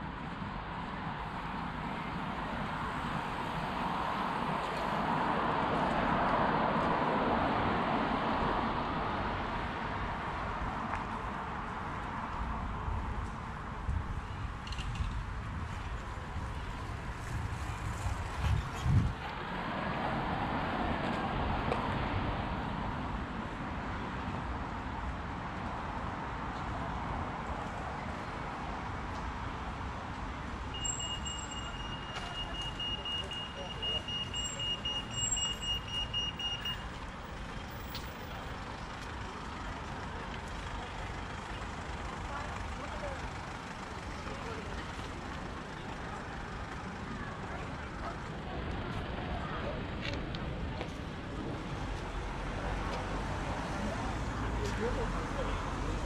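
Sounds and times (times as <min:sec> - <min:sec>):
road traffic: 0:00.0 - 0:56.0
passers-by talking: 0:26.6 - 0:56.0.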